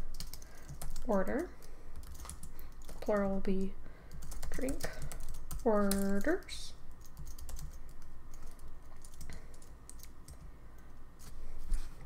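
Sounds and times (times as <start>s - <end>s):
keyboard typing clicks: 7.0s - 10.4s.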